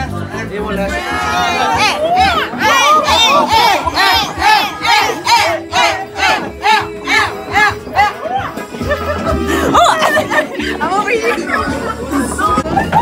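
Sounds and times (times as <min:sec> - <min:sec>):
group chanting rhythmically: 0:00.9 - 0:08.6.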